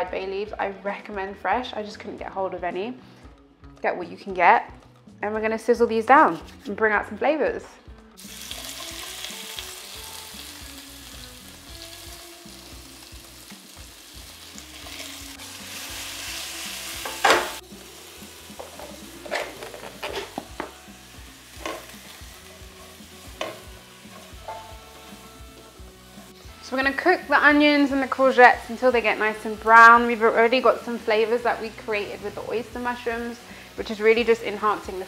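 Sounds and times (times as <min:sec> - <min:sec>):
vegetables sizzling in a pan: 0:08.2 - 0:35.0.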